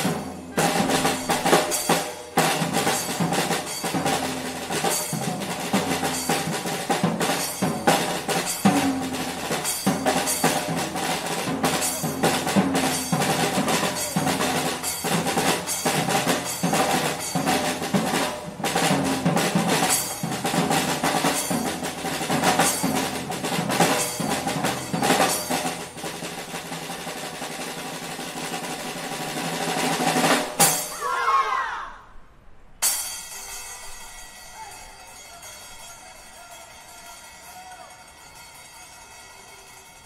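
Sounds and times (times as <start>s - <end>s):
drums playing: 0.0s - 31.1s
drum roll: 0.0s - 31.3s.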